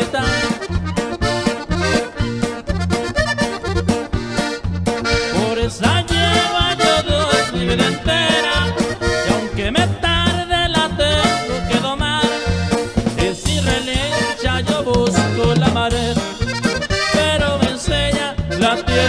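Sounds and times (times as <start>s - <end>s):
accordion melody: 0.0s - 19.0s
bass line: 0.0s - 19.0s
drum kit beat: 0.0s - 19.0s.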